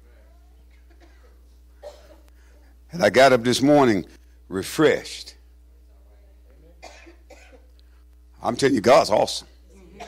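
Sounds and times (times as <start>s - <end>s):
steady low hum: 0.0s - 10.0s
faint coughing: 0.7s - 2.3s, 6.8s - 7.7s.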